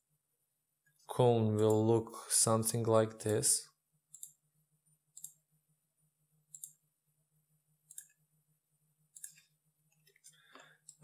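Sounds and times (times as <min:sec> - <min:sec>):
computer mouse clicking: 0:04.1 - 0:04.4, 0:05.1 - 0:05.4, 0:06.5 - 0:06.8, 0:07.8 - 0:08.2, 0:09.1 - 0:11.0.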